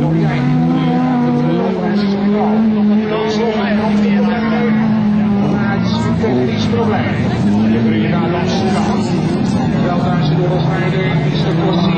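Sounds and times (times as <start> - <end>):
racing car engines revving: 0.0 - 11.9.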